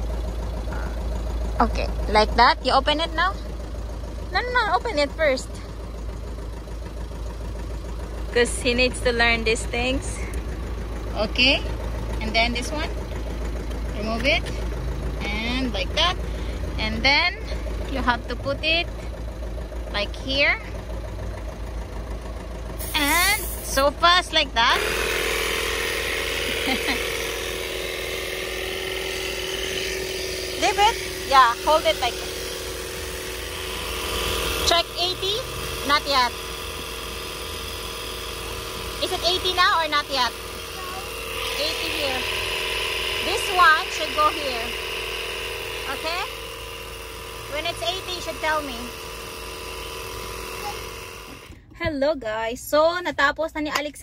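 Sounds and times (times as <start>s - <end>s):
electric tyre inflator running: 0.0s - 51.7s
low engine-like hum: 0.0s - 54.0s.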